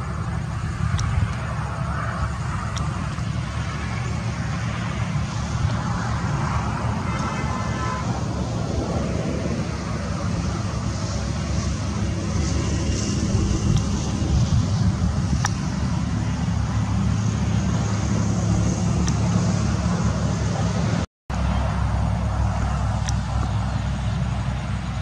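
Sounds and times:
low engine or traffic rumble: 0:00.0 - 0:25.0.

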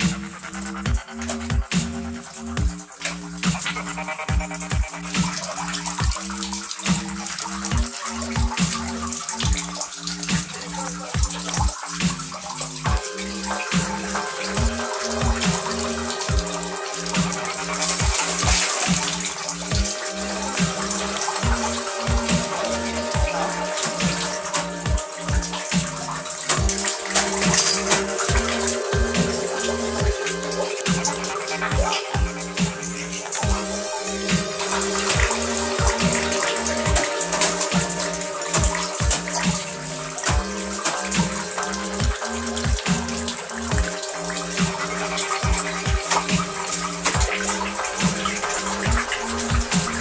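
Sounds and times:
electronic music with steady beat: 0:00.0 - 0:50.0
running water hiss: 0:00.0 - 0:50.0.

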